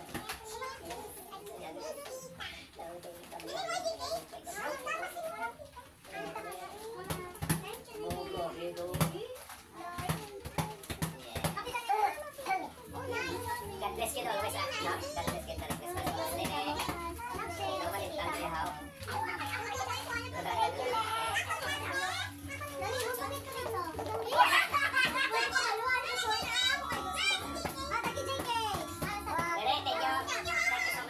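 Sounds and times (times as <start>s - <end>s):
adults and children chattering: 0.0s - 31.0s
music playing: 13.0s - 31.0s.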